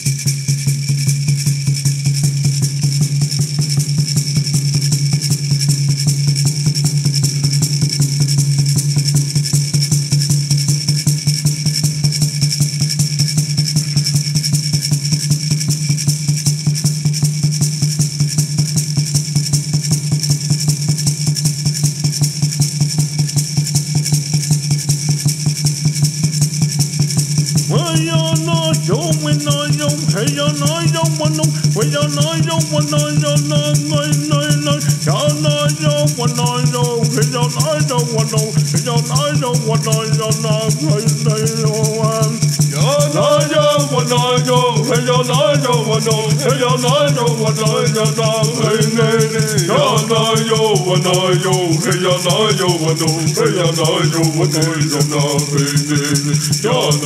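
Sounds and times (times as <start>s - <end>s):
rattle shaken: 0.0s - 57.0s
drum beaten in fast rhythm: 0.2s - 57.0s.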